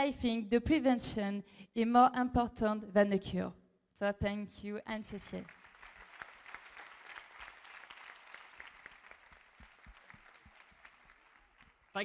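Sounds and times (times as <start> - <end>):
faint audience applause: 5.4 - 12.0.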